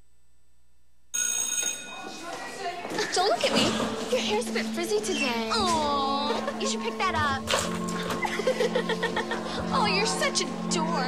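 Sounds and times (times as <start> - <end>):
electric bell ringing: 1.2 - 2.3.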